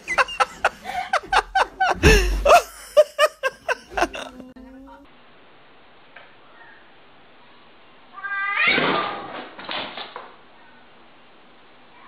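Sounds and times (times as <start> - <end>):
cat meowing: 8.2 - 8.9.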